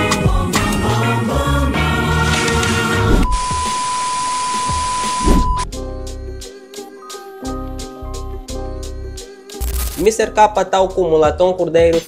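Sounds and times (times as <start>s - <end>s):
high test-tone beep: 3.2s - 5.6s
static hiss: 3.2s - 5.6s.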